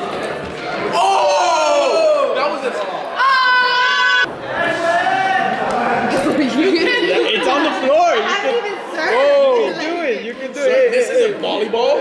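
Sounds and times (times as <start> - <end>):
teenagers talking and exclaiming: 0.0 - 12.0.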